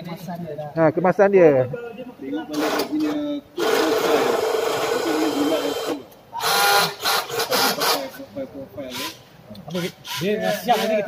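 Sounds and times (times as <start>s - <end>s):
cordless drill against metal frame: 2.5s - 8.2s, 8.9s - 11.0s.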